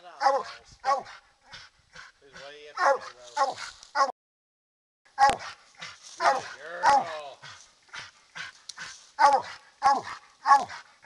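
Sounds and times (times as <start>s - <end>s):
dog barking and bawling: 0.2s - 1.6s, 2.8s - 4.1s, 5.2s - 7.2s, 9.2s - 11.0s.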